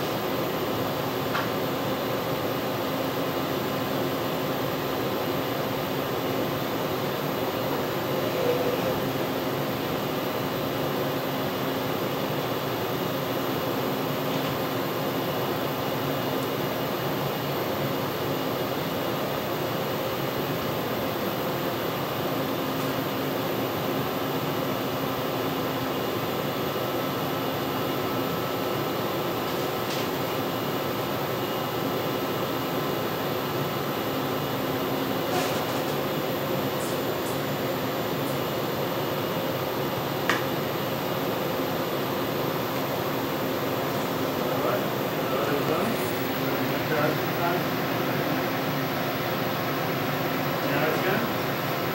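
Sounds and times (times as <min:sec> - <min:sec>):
ventilation hum: 0:00.0 - 0:51.9.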